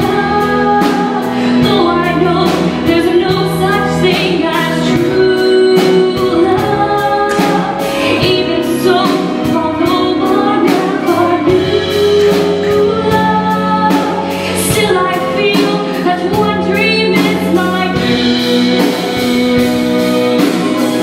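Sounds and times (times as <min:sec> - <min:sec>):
music with steady beat: 0:00.0 - 0:21.0
woman singing into microphone: 0:00.0 - 0:21.0.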